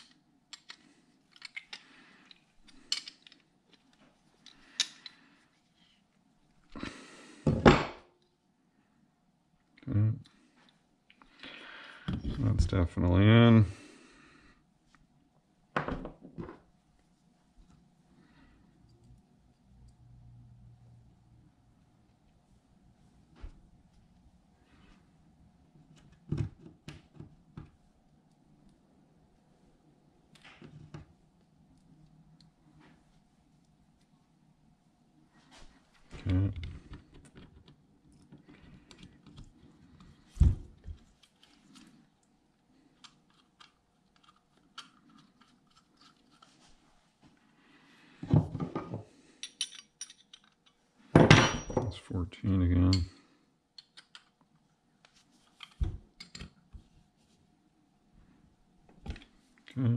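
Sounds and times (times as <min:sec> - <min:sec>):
tools clattering: 0:48.6 - 0:52.0.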